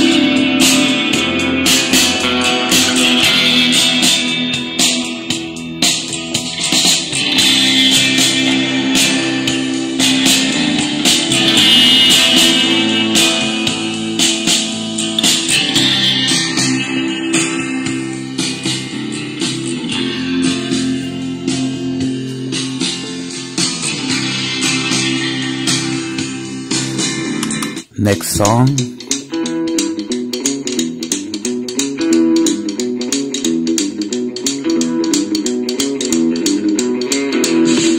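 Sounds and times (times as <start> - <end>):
bass-heavy guitar music from speaker: 0.0 - 37.9.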